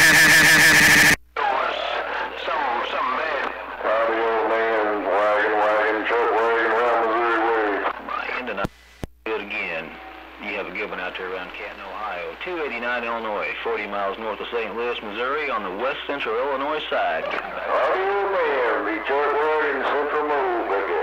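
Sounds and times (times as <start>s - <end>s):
distorted voice over radio: 0.0s - 9.8s, 10.5s - 21.0s.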